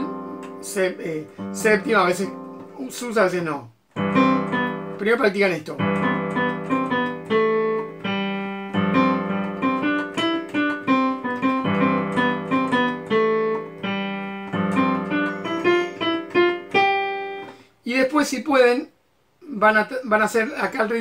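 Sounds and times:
digital piano melody over chords: 0:00.0 - 0:17.7.

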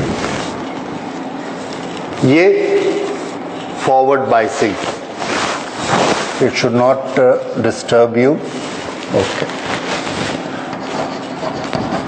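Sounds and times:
steady room noise hiss: 0:00.0 - 0:12.0.

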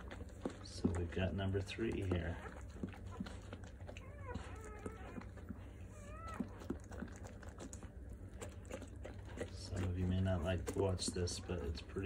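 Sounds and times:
dog whimpering: 0:01.9 - 0:07.8.

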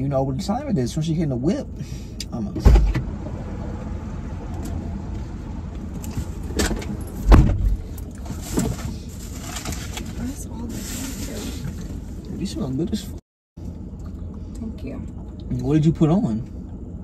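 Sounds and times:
heavy thump into car seat: 0:02.6 - 0:03.1, 0:06.6 - 0:07.8
rustling: 0:07.8 - 0:12.2.

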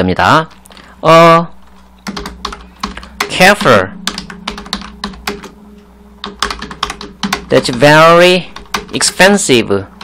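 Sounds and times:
steady low hum: 0:00.0 - 0:10.0
keyboard keys clicking: 0:02.0 - 0:05.6, 0:06.2 - 0:09.2.

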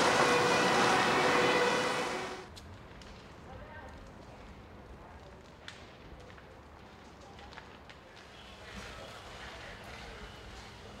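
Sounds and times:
low outdoor rumble and hiss: 0:02.2 - 0:11.0.

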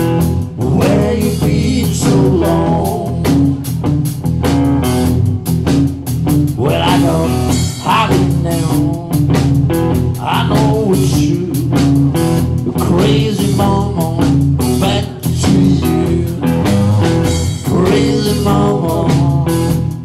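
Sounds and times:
bass guitar: 0:00.0 - 0:20.0
drums at a steady beat: 0:00.0 - 0:20.0
electric guitar lead: 0:00.0 - 0:20.0.

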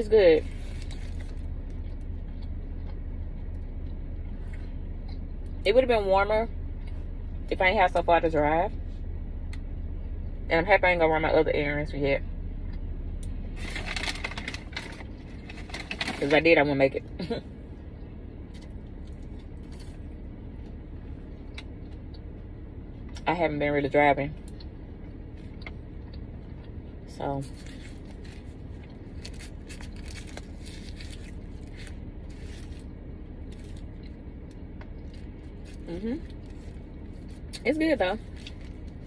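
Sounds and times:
woman's voice: 0:00.0 - 0:00.5, 0:05.6 - 0:06.5, 0:07.5 - 0:08.8, 0:10.5 - 0:12.3, 0:16.1 - 0:17.4, 0:23.2 - 0:24.4, 0:27.1 - 0:27.6, 0:35.9 - 0:36.3, 0:37.6 - 0:38.3
car cabin rumble: 0:00.0 - 0:39.0
steady low hum: 0:00.0 - 0:39.0
paper wrapper rustling: 0:13.6 - 0:16.3
chewing food: 0:24.4 - 0:37.6.

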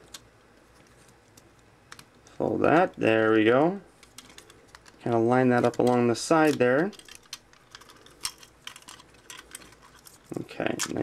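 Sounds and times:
plastic toy parts clicking: 0:04.0 - 0:11.0.

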